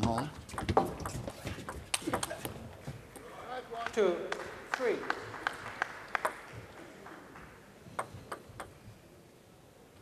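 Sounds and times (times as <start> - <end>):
table tennis ball bouncing: 0.0 - 3.3, 6.2 - 6.7, 7.4 - 8.8.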